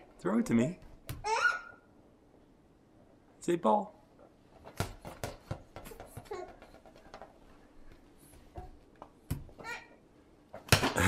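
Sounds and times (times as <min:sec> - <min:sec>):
toddler babbling: 0:01.2 - 0:01.8, 0:09.6 - 0:10.0
ball thumping on wooden floor: 0:04.6 - 0:07.4, 0:08.5 - 0:09.7, 0:10.6 - 0:11.0.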